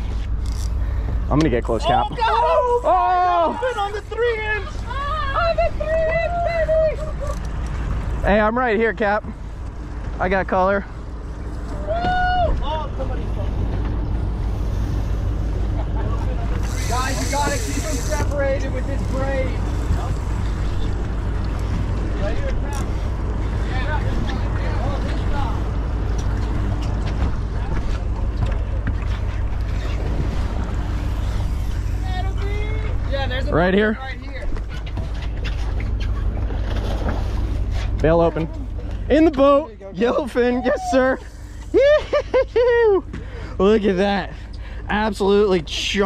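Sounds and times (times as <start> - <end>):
outboard motors idling: 0.0 - 46.0
water around hull: 0.0 - 46.0
crew shouting: 16.6 - 19.3.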